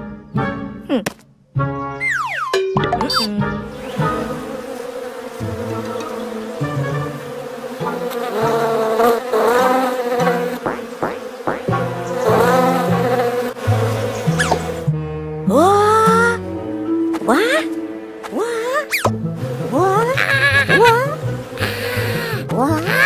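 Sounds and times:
background music: 0.0s - 9.0s, 11.2s - 23.0s
cartoon bees buzzing: 2.0s - 14.9s, 17.2s - 23.0s.

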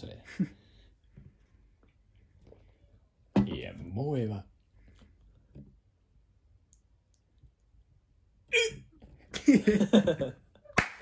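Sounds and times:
person laughing: 9.3s - 10.4s.

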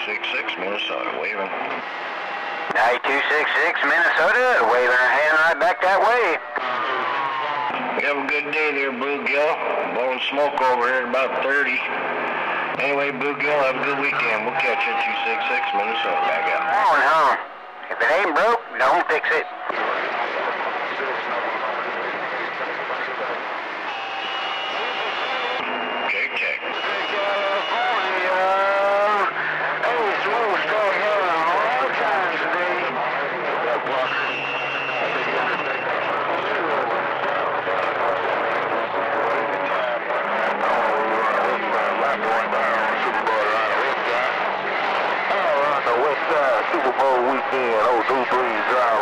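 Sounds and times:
radio static hiss: 0.0s - 7.0s, 8.1s - 37.0s
faint garbled radio voices: 0.0s - 49.0s
whistling radio tones: 0.1s - 31.9s, 33.8s - 37.3s.

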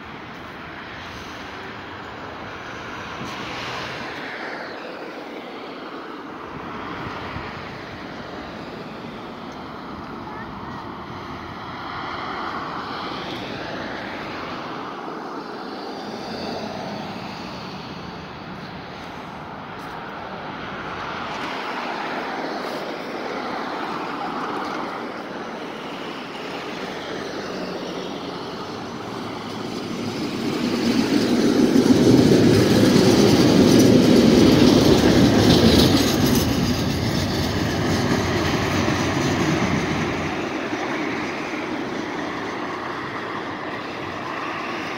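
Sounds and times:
tram motors and wheels on rails: 0.0s - 44.9s.

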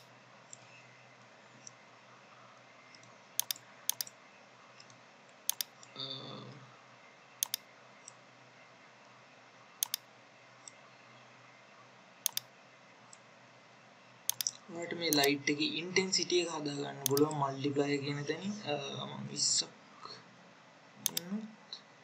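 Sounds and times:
faint steady hiss: 0.0s - 22.0s
computer mouse button clicks: 3.4s - 4.1s, 5.5s - 5.7s, 7.4s - 7.6s, 9.8s - 10.0s, 12.2s - 12.5s, 14.3s - 14.5s.

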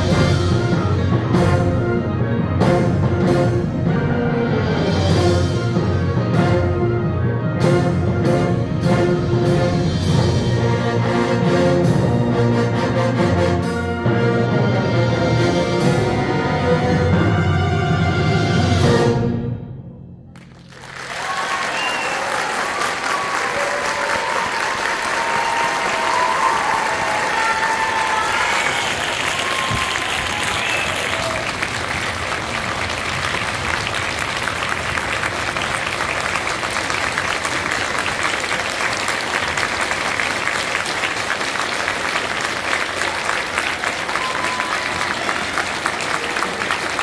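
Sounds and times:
audience applauding: 20.4s - 47.0s.

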